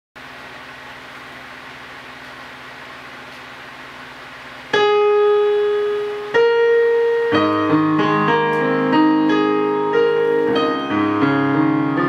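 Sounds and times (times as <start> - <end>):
digital piano note ringing: 4.7 - 12.0.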